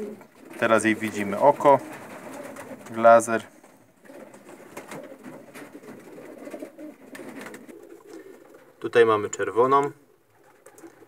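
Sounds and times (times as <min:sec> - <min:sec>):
pigeons cooing: 0:00.0 - 0:11.0
faint clicks: 0:10.6 - 0:11.0.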